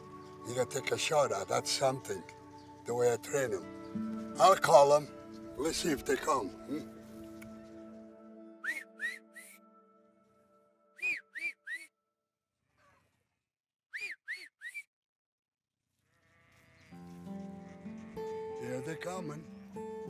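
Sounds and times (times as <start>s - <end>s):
man whistling: 8.6s - 9.6s, 11.0s - 11.9s, 13.9s - 14.9s.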